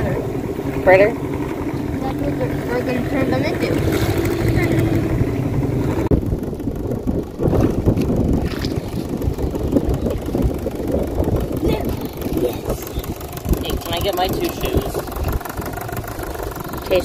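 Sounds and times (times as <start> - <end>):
low rumble of wind: 0.0 - 17.0
small outboard motor running: 0.0 - 17.0
water rumbling: 0.0 - 17.0.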